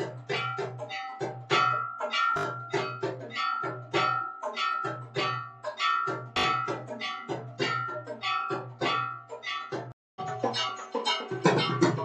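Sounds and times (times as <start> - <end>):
metal bells struck rhythmically: 0.0 - 12.0.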